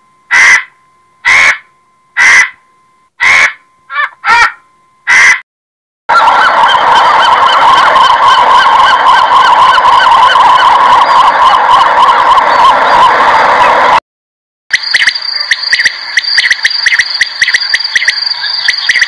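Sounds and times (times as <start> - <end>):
vulture harsh calls: 0.3 - 2.6, 3.2 - 5.4.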